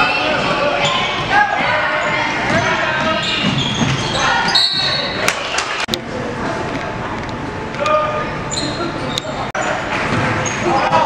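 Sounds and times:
sneaker squeaks: 0.0s - 5.3s, 8.4s - 11.0s
crowd voices echoing: 0.0s - 11.0s.

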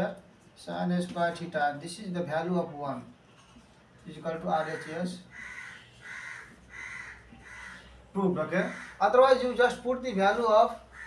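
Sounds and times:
crow cawing: 4.5s - 8.0s, 8.6s - 9.4s, 10.8s - 11.0s.

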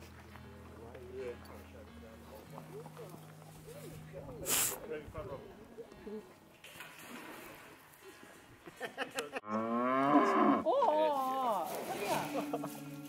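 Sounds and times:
cow mooing: 9.4s - 10.7s.

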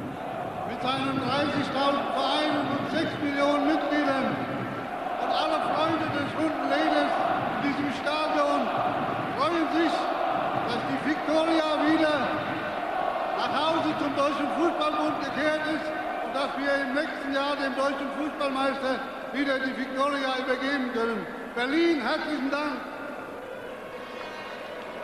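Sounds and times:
man speaking over public address: 0.6s - 23.1s.

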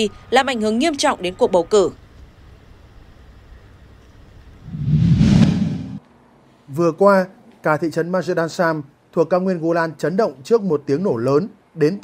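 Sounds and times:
faint low street rumble: 0.0s - 12.0s
low hum: 4.6s - 6.0s
whoosh sound effect: 4.7s - 6.0s.

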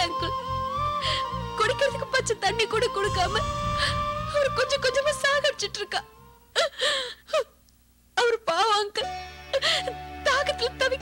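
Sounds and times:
woman gasping and sobbing: 6.6s - 7.6s.

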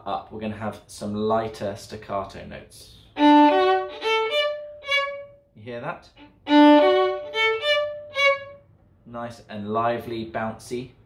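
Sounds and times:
violin staccato notes: 3.2s - 5.4s, 6.2s - 8.7s.

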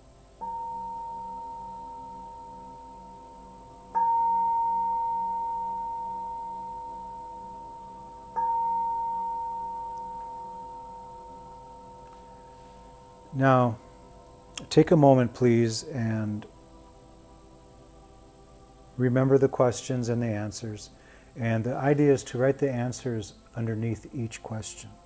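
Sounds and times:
meditation bell ringing: 0.4s - 14.1s.

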